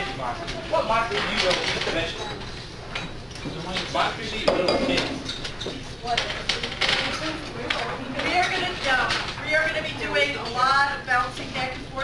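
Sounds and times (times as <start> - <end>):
classroom chatter: 3.5 - 12.0.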